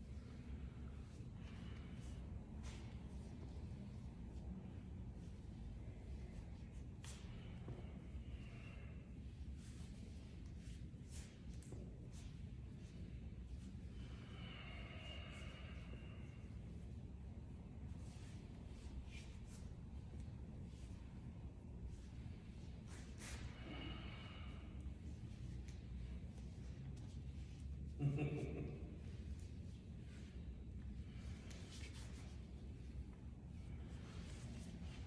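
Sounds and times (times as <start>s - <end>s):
low steady hum: 0.0s - 35.0s
soft brushing sounds: 0.0s - 35.0s.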